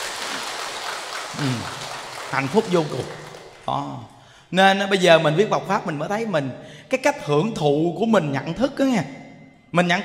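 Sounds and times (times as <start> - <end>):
large audience clapping: 0.0 - 3.7.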